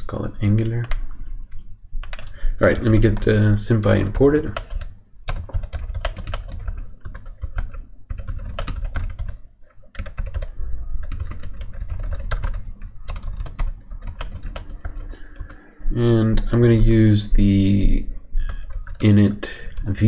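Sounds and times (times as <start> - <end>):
computer keyboard typing: 0.5 - 15.7, 18.1 - 20.0.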